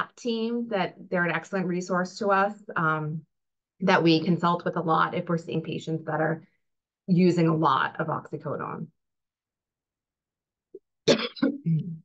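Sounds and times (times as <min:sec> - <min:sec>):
person clearing throat with cough: 0:11.0 - 0:12.0.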